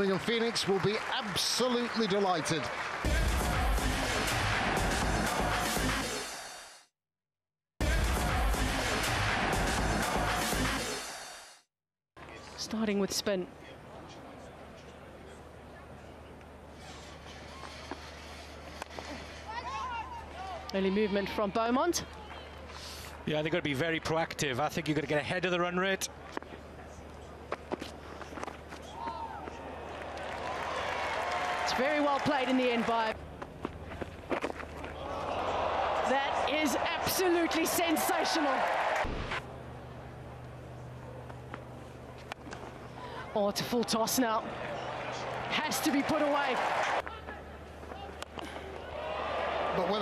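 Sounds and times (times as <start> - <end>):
stadium crowd: 0.0 - 6.6, 28.3 - 33.2, 34.7 - 39.5, 42.9 - 50.0
faint crowd background: 12.2 - 50.0.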